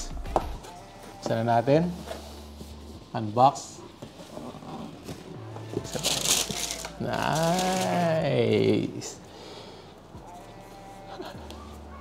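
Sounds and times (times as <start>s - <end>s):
paper and cardboard rustling: 1.0s - 8.2s.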